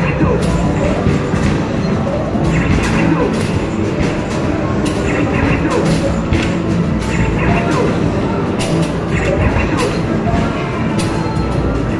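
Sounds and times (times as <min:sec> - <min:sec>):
arcade machine music and effects: 0:00.0 - 0:11.9
basketball hitting backboard and rim: 0:02.4 - 0:07.8.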